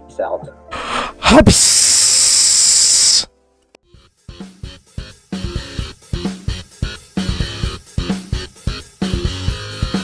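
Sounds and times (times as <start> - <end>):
white noise rushing hiss: 1.2 - 3.3.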